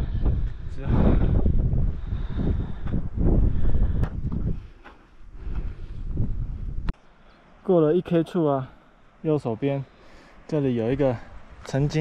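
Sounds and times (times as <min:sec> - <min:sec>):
wind buffeting microphone: 0:00.0 - 0:07.0.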